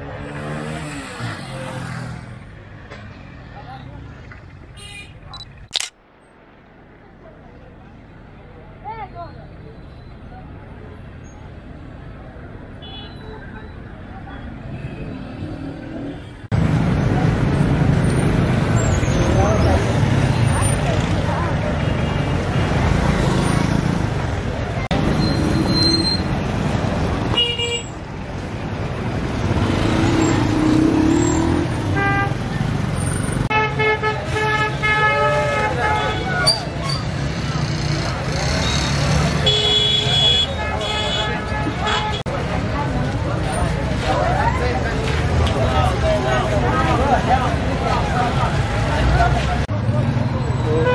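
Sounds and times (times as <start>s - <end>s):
traffic: 0.0s - 50.9s
crowd chatter: 6.8s - 27.3s, 33.8s - 50.9s
vehicle horns: 27.3s - 28.0s, 31.3s - 32.4s, 33.4s - 36.7s, 38.6s - 42.3s, 50.6s - 50.9s.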